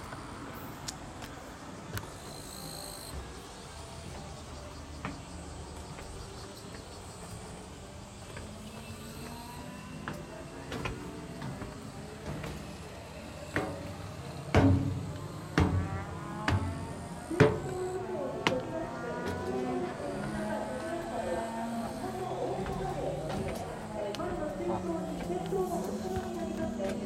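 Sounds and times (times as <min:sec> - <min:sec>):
people talking in background: 0:00.2 - 0:27.0.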